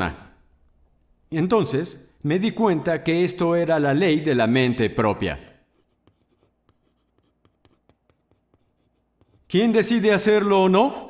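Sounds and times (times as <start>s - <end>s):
chalk tapping and scratching: 5.6s - 9.6s.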